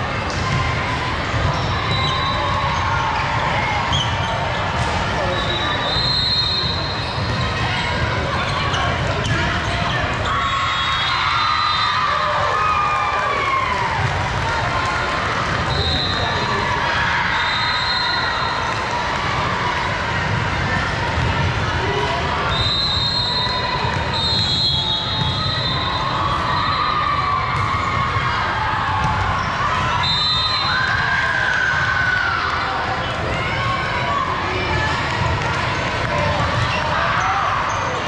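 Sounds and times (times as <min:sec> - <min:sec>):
din of sports hall: 0:00.0 - 0:38.0.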